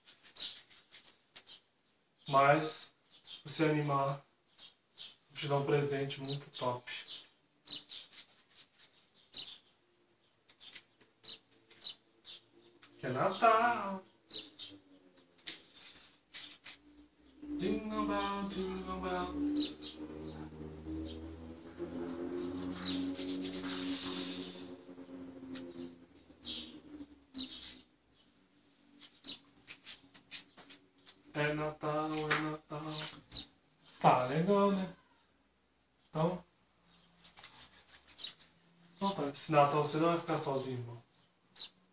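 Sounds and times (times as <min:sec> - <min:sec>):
small bird chirping: 0:00.0 - 0:03.5, 0:04.4 - 0:05.3, 0:06.2 - 0:34.0, 0:36.8 - 0:39.2, 0:41.1 - 0:41.9
tune in long held notes: 0:17.2 - 0:27.6
short hissy sounds: 0:22.8 - 0:24.7.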